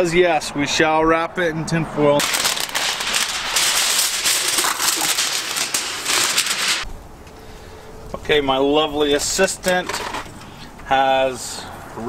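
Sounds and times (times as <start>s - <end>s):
aluminium foil crinkling: 2.2s - 6.9s.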